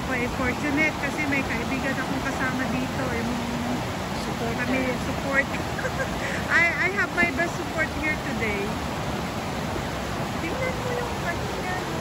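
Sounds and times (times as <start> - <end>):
person talking: 0.0 - 8.7
river rapids rushing over rocks: 0.0 - 12.0.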